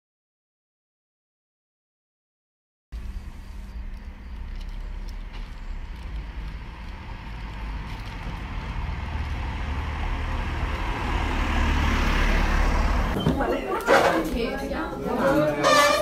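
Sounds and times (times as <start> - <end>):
road traffic rumble: 3.0 - 16.0.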